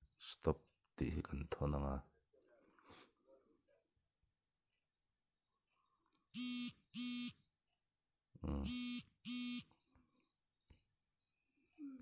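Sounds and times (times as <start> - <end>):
phone alert beeps: 6.4 - 7.3
phone low buzz: 6.4 - 7.3, 8.4 - 9.6.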